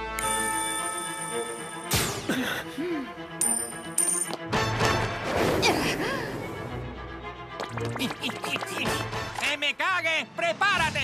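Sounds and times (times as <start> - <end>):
dramatic background music: 0.0 - 11.0
coin metallic ring: 3.4 - 4.4.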